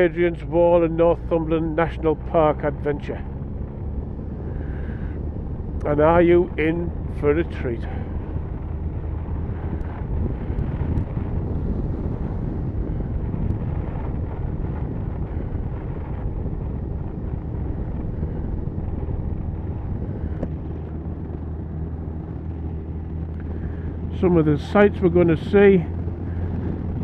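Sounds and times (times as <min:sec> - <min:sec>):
motorcycle engine running: 0:00.0 - 0:27.0
wind rushing past microphone: 0:00.0 - 0:27.0.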